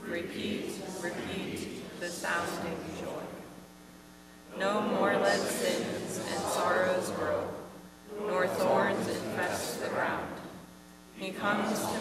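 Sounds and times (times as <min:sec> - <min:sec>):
people speaking: 0:00.0 - 0:03.5, 0:04.5 - 0:10.6, 0:11.2 - 0:12.0
electrical hum: 0:00.0 - 0:12.0.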